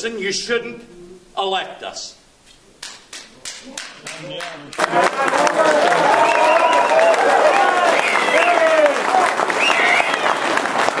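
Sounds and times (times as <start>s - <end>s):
audience applauding: 2.9s - 11.0s
voices calling out: 3.6s - 10.5s.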